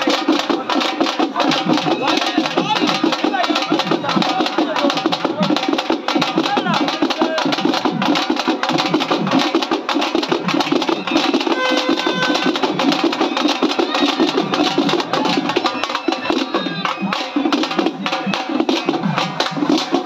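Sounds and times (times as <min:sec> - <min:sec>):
drum band beating fast: 0:00.0 - 0:20.0.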